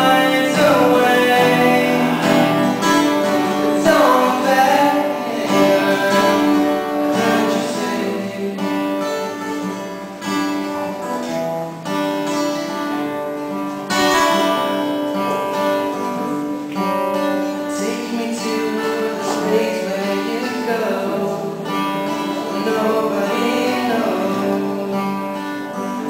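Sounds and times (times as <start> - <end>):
acoustic guitar strumming chords: 0.0 - 26.0.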